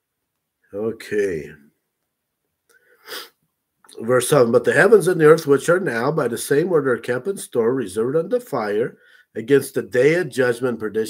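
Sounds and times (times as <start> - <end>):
person speaking: 0.7 - 1.6, 3.9 - 11.0
sharp nose sniff: 2.8 - 3.4.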